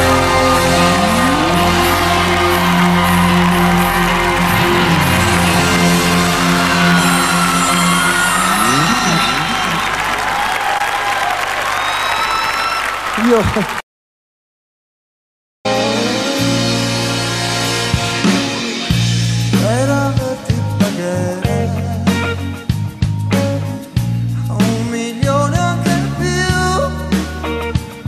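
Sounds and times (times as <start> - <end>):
live band playing: 0.0 - 10.4, 15.7 - 28.0.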